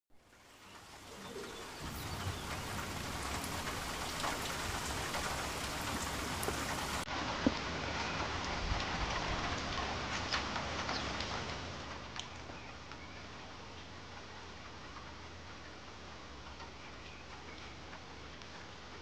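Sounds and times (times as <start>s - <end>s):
steady rain: 0.1s - 19.0s.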